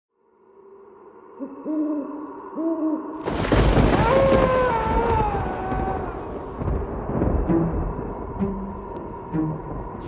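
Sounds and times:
wolf howling: 3.6 - 6.6.

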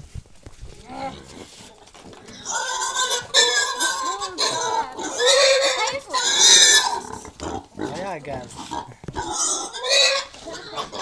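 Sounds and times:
pig squealing: 2.2 - 11.0.

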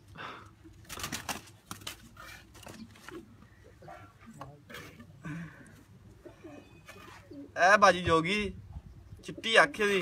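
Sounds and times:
pigeons cooing: 2.0 - 7.6, 8.8 - 10.0.

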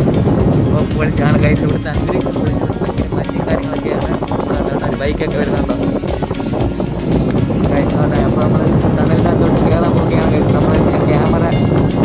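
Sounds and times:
car road and engine noise: 0.0 - 12.0
person speaking: 0.7 - 11.9.

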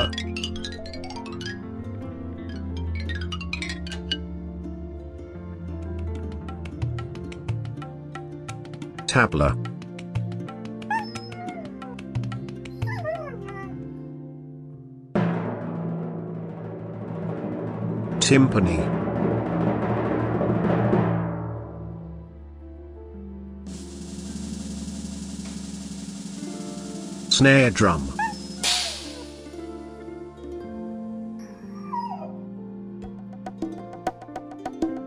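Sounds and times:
background music with held tones: 0.0 - 15.8, 22.0 - 35.0
dog whine sound effect: 10.9 - 12.1, 12.7 - 13.8, 27.8 - 30.1, 31.4 - 32.5
brief hiss: 23.7 - 30.1
timpani low sustained note: 23.7 - 30.6.

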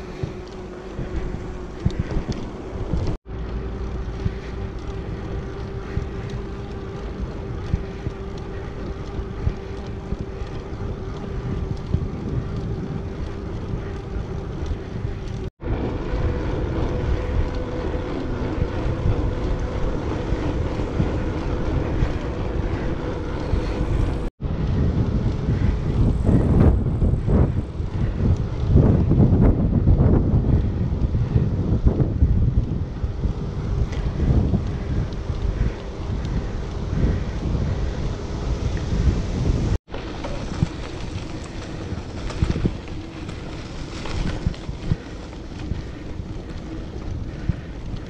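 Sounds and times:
bicycle tyres humming on path: 0.0 - 48.0
wind on microphone: 0.0 - 48.0.

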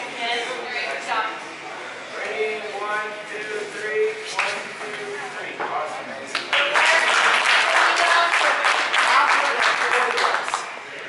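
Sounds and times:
people talking in a large room: 0.0 - 11.0.

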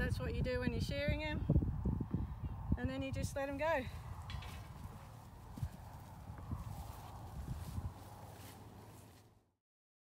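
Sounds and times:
sheep hooves on floor: 4.2 - 9.3.

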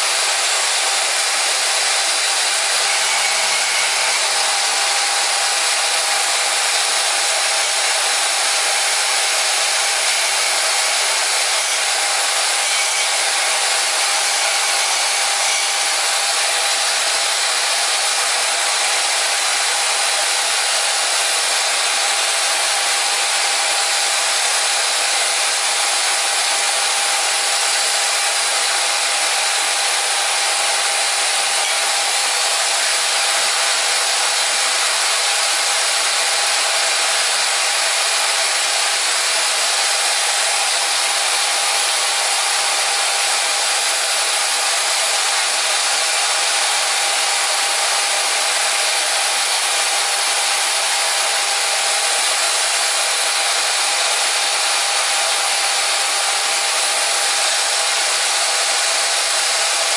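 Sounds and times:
band saw cutting: 0.0 - 59.9.

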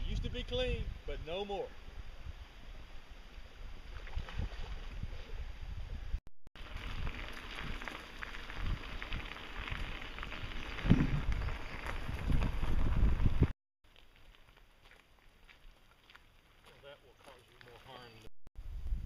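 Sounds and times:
wind rumbling on microphone: 0.0 - 13.6, 18.6 - 19.0.

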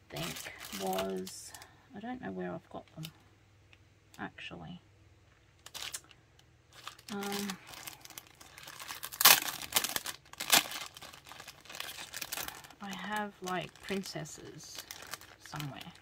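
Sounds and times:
plastic sleeves crinkling: 0.0 - 1.7, 5.3 - 16.0.

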